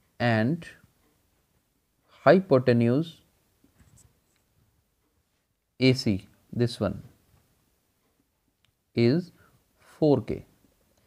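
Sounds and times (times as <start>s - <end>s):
marker pen on whiteboard: 3.6s - 5.2s.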